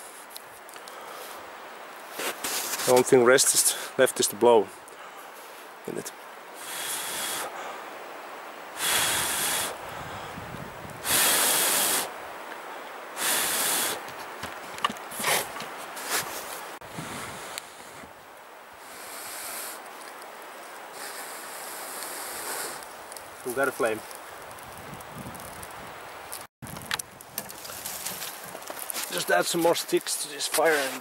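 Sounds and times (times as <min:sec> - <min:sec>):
person blowing on tinder: 0:06.6 - 0:07.5, 0:08.8 - 0:10.1, 0:11.0 - 0:12.1, 0:13.2 - 0:14.0, 0:18.8 - 0:19.8, 0:20.9 - 0:22.8.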